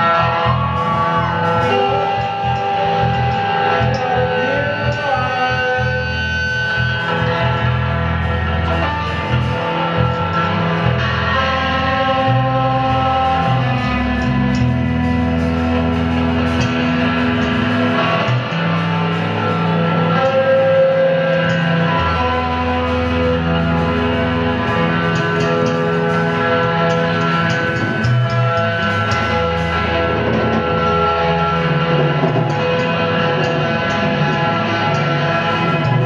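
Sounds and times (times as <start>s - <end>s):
bass guitar: 0.0s - 36.0s
drums: 0.0s - 36.0s
electric guitar: 0.0s - 36.0s.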